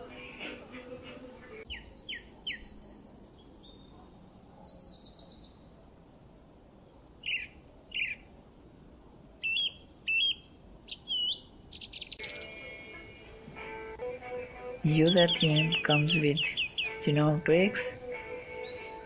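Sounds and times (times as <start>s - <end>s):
small birds singing: 0.0s - 5.9s, 6.9s - 8.3s, 9.4s - 19.0s.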